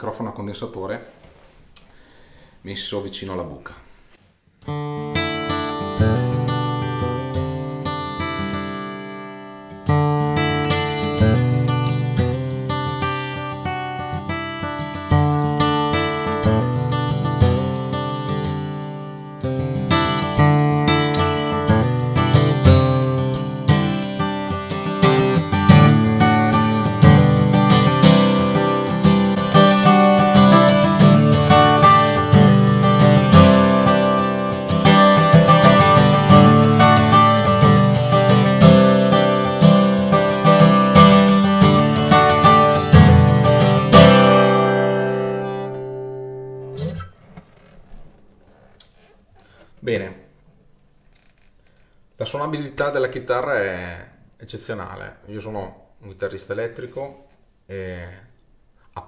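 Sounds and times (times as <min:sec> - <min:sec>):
acoustic guitar strummed and picked: 0:04.6 - 0:50.0.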